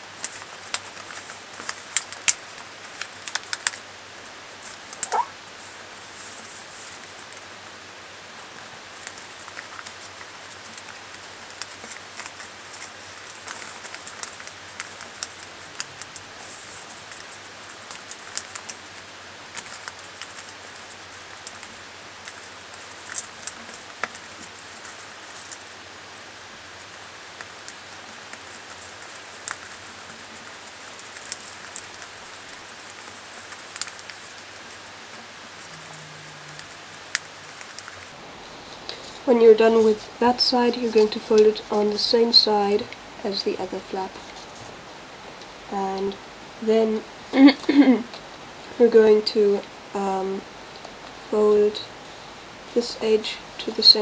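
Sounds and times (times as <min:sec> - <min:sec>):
paper crackling and rustling: 0:00.0 - 0:39.2
steady hiss: 0:00.0 - 0:54.0.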